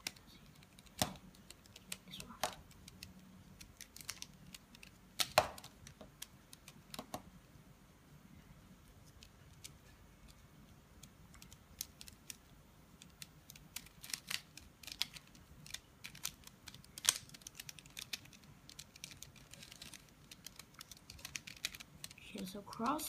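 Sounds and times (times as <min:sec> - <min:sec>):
plastic puzzle cube clicking: 0:00.0 - 0:07.2, 0:11.0 - 0:23.0.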